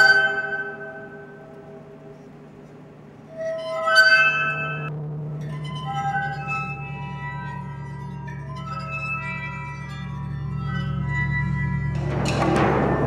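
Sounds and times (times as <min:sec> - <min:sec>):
glass-like ringing tones: 0:00.0 - 0:01.9, 0:03.2 - 0:11.9
low steady hum: 0:00.0 - 0:13.0.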